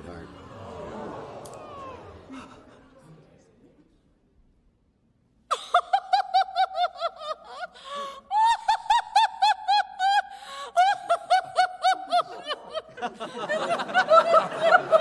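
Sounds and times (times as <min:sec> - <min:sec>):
woman laughing high-pitched: 0:05.5 - 0:15.0.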